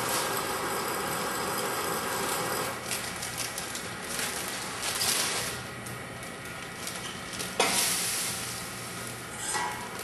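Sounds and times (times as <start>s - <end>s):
machine humming: 0.0s - 4.8s
hiss of falling sugar grains: 7.6s - 9.1s.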